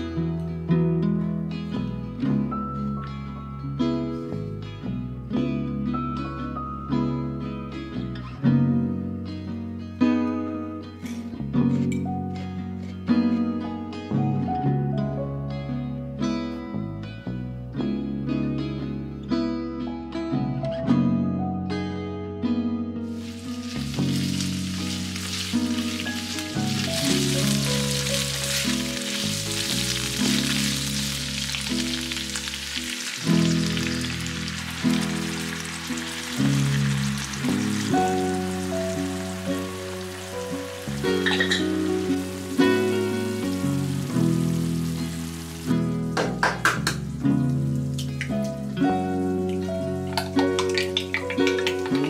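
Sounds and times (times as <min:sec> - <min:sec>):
background music: 0:00.0 - 0:52.0
chicken sizzling in a frying pan: 0:23.2 - 0:52.0.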